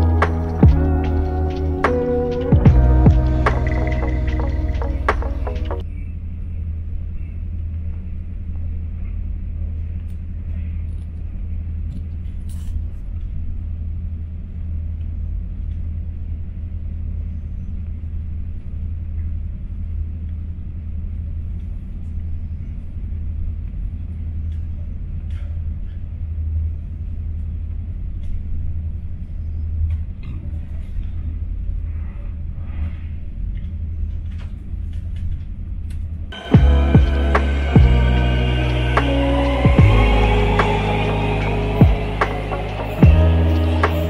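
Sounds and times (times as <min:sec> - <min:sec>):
train rumbling: 0:36.4 - 0:44.0.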